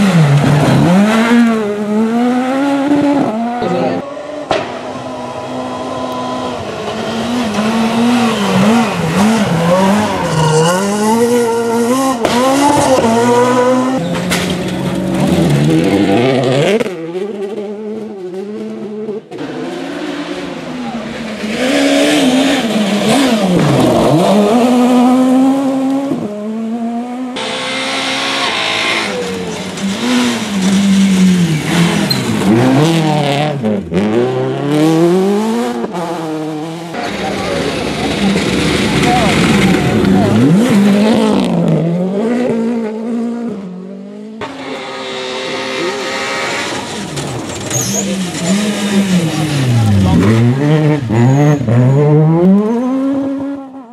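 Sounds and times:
engines revving hard: 0.0s - 53.9s
rally cars passing at speed: 0.0s - 53.9s.

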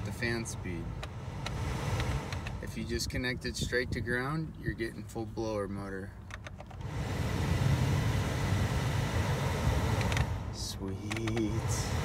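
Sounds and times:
air rushing from vents: 0.8s - 3.7s, 6.7s - 12.0s
heater blower motor running: 6.8s - 12.0s.

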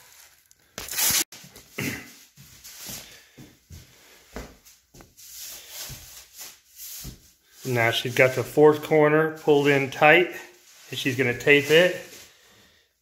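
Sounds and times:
plastic sheeting crinkling: 9.6s - 12.3s.

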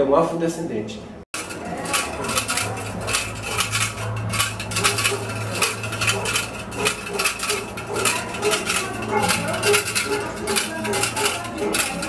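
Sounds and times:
metallic clinking and jingling: 1.4s - 12.0s.

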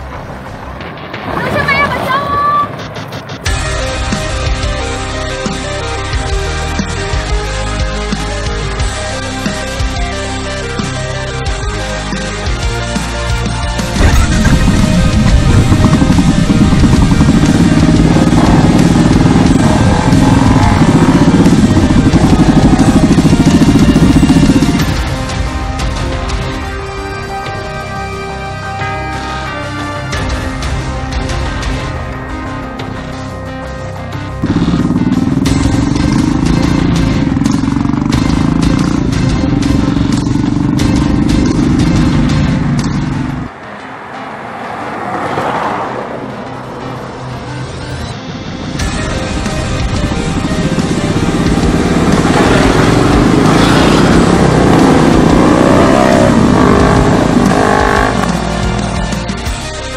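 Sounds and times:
motorcycle engines revving: 0.0s - 26.7s, 32.7s - 59.9s
loud background music: 0.0s - 59.9s.

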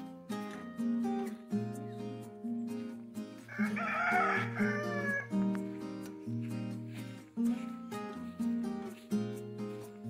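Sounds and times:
background music: 0.0s - 10.0s
rooster crowing: 3.5s - 5.6s.

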